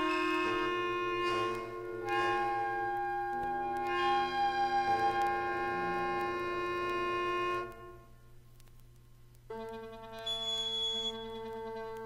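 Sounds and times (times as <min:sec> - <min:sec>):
wind ensemble sustained chord: 0:00.0 - 0:08.3.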